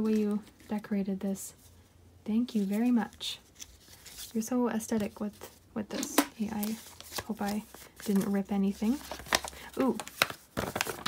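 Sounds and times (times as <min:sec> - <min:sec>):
paper crinkling as unfolded: 0:02.5 - 0:05.6, 0:06.4 - 0:11.0.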